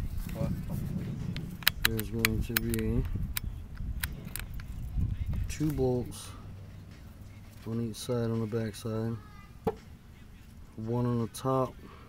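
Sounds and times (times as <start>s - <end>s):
camera handling rumble: 0.0s - 5.9s
sharp clicks: 1.3s - 4.8s.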